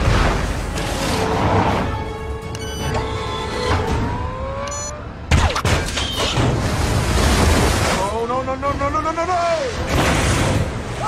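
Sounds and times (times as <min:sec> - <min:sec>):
sustained rising score tones: 0:02.5 - 0:05.3.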